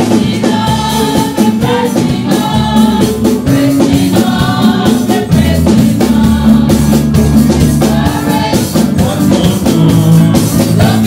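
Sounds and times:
gospel choir singing: 0.0 - 11.0
steady drum beat: 0.0 - 11.0.

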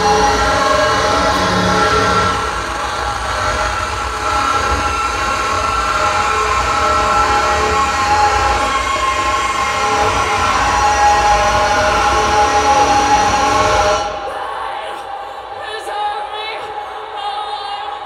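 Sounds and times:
distorted noise drone: 0.0 - 14.4.

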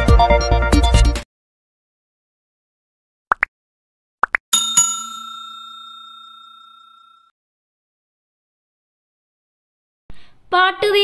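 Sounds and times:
bell-like ding: 4.6 - 7.3.

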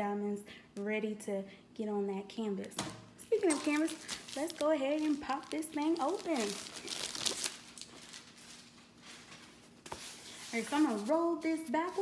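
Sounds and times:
faint steady hum: 0.0 - 12.0
plastic sleeve crinkling: 3.4 - 12.0.

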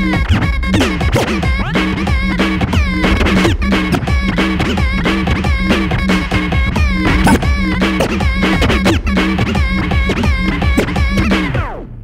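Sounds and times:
looped beat: 0.0 - 11.8
vinyl scratching: 0.0 - 12.0.

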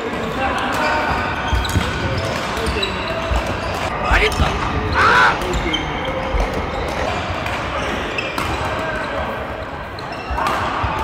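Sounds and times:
echoing voices: 3.9 - 6.0.

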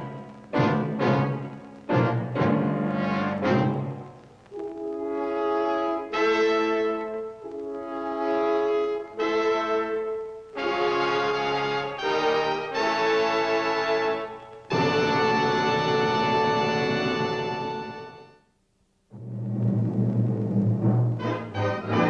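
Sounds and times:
orchestral brass chords: 0.0 - 18.4, 19.1 - 22.0.

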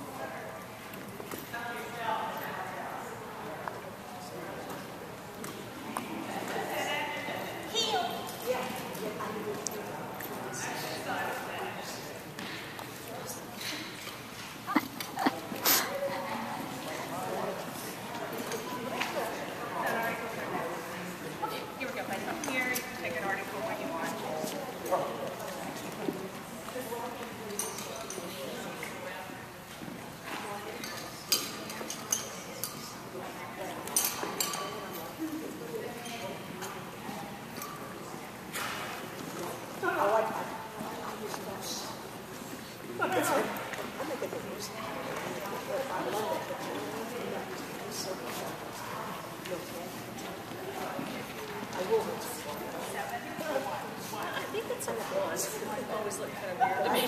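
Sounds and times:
indistinct voices in echoing hall: 0.0 - 57.0.

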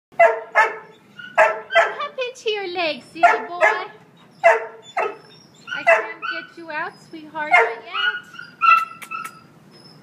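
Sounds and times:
dog barking: 0.2 - 2.0, 3.2 - 6.5, 7.5 - 9.3.

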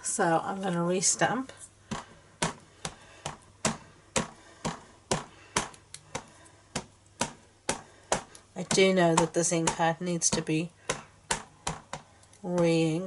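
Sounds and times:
ink pad tapping on rubber stamp: 1.9 - 12.8.

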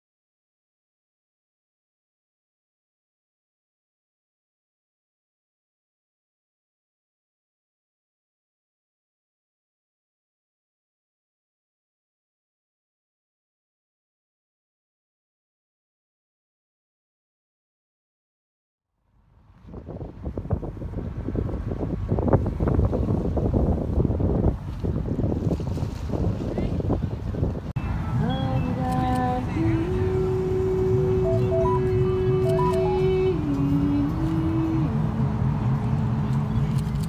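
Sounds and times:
wind buffeting microphone: 19.4 - 31.2
slow music of long held notes: 29.8 - 34.6.

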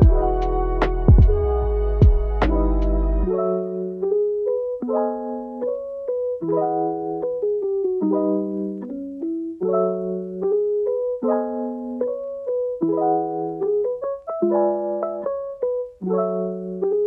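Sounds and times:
gentle keyboard tune: 0.0 - 17.0.

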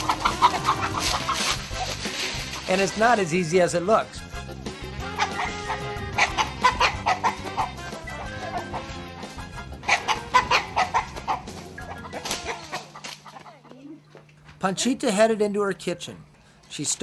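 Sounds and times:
chickens clucking and squawking: 0.0 - 3.3, 4.6 - 14.1
soft background music: 0.0 - 14.1.

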